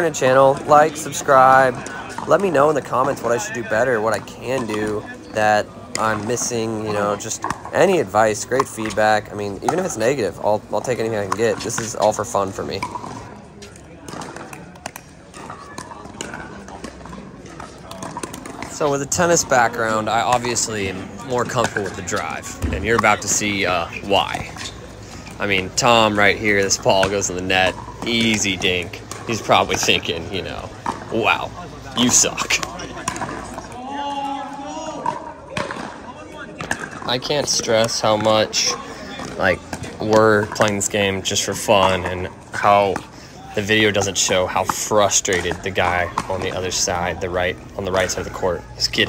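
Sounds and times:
players talking: 0.0s - 49.0s.

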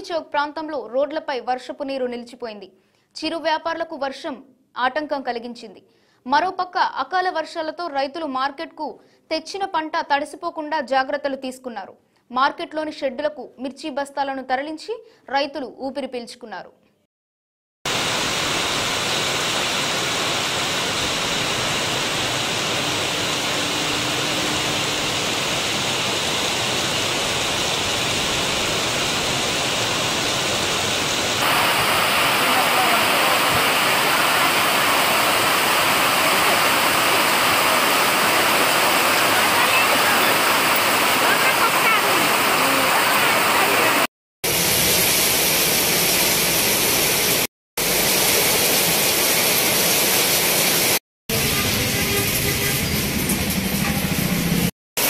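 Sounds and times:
heavy rain pouring: 17.9s - 54.7s.

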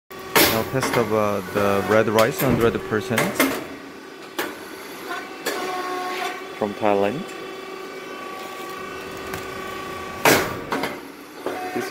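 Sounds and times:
steady machine whine: 0.1s - 11.9s
sharp machine pops: 2.4s - 3.7s.

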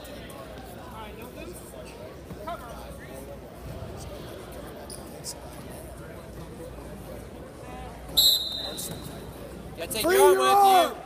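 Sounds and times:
referee's whistle blast: 8.2s - 9.1s.

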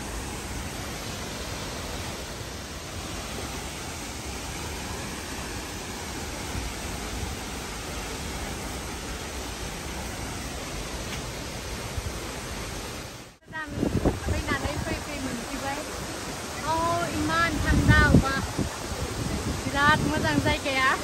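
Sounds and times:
waterfall rushing: 0.0s - 21.0s.

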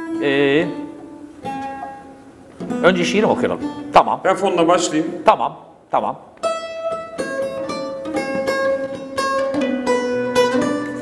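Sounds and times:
plucked lute note: 0.0s - 4.0s, 6.4s - 11.0s
man's voice: 0.2s - 0.9s, 2.8s - 6.3s.

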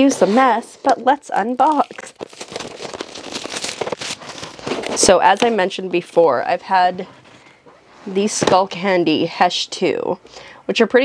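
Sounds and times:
packaging crackling and rustling: 0.8s - 6.0s.

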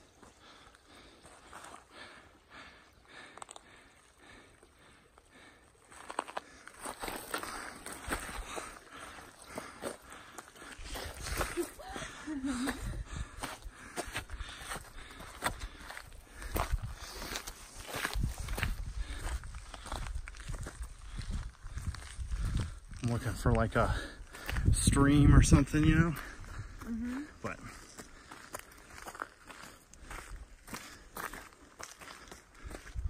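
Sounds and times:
footsteps on gravel: 5.4s - 24.8s, 25.6s - 33.0s.

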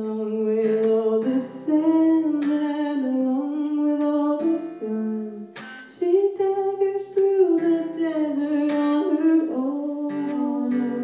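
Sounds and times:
acoustic guitar: 0.0s - 11.0s
two women singing: 0.0s - 11.0s.

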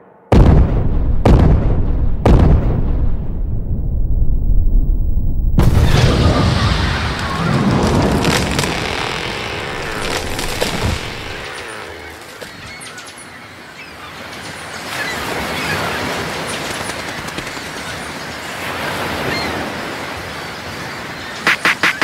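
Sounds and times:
fast sharp beats of a song: 21.5s - 22.0s.

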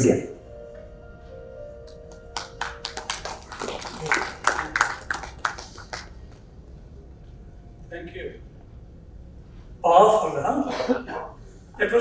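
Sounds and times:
background music with held tones: 0.0s - 9.6s
audience clapping: 1.8s - 6.5s.

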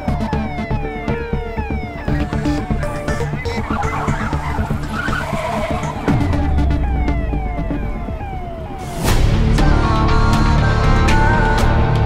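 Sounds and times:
tense synth film score: 0.0s - 12.0s
low drone: 1.6s - 11.6s
car tyres skidding: 2.0s - 9.3s.

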